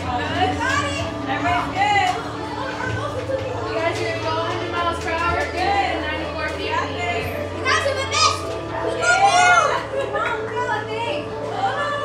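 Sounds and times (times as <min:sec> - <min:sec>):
background music: 0:00.0 - 0:12.0
excited young voices: 0:06.8 - 0:12.0.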